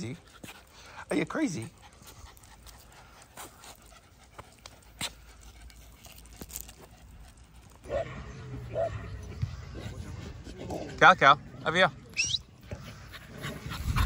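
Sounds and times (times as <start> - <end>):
puppy panting: 0.0 - 11.8, 12.5 - 14.0
distant voices: 0.0 - 13.8
dogs: 0.0 - 14.0
claws clicking on concrete: 1.7 - 7.8.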